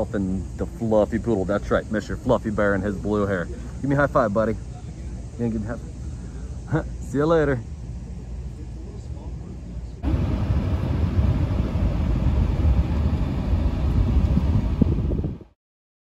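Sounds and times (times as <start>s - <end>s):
car rumble inside cabin: 10.0s - 15.5s.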